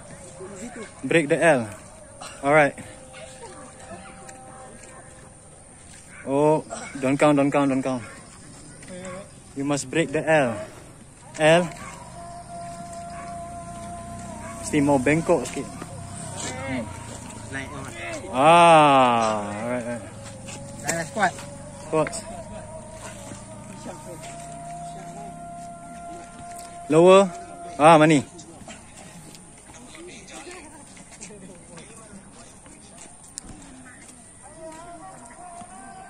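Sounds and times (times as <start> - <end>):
indistinct background voices: 0.0 - 36.0
steady wavering tone: 8.6 - 29.5.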